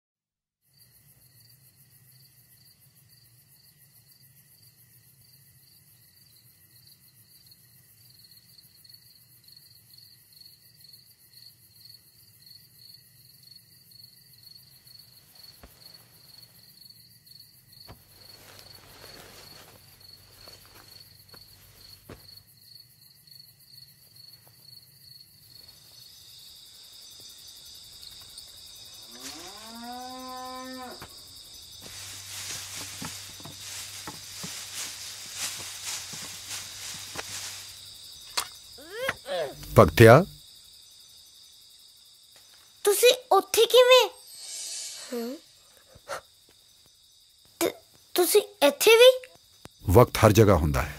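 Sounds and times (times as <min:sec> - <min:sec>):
crickets chirping: 0:00.6 - 0:50.9
cow mooing: 0:29.1 - 0:31.0.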